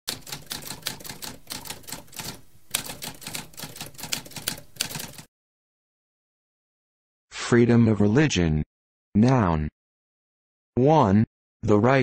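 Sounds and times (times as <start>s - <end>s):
typewriter typing: 0.1s - 5.3s.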